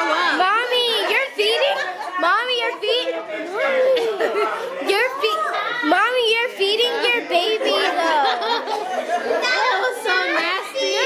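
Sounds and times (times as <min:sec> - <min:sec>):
group of people talking excitedly: 0:00.0 - 0:11.0.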